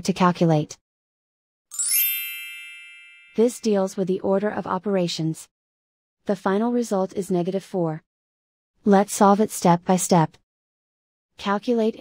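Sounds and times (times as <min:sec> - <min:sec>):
bright electronic ding: 0:01.7 - 0:03.5.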